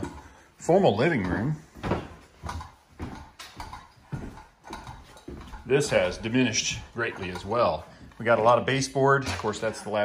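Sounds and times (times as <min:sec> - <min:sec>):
footsteps on bare floor: 0:00.0 - 0:10.0.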